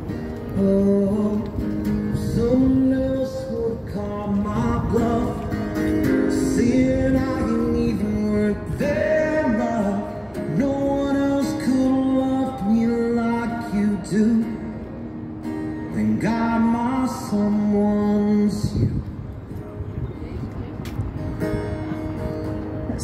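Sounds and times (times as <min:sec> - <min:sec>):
acoustic guitar strumming: 0:00.0 - 0:18.8
man singing: 0:00.5 - 0:15.0, 0:15.8 - 0:19.0.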